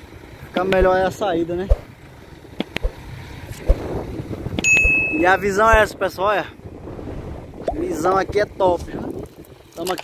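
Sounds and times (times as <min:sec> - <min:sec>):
truck engine rumbling: 0:00.0 - 0:10.0
wind on microphone: 0:03.5 - 0:09.6
bell-like ding: 0:04.6 - 0:05.4.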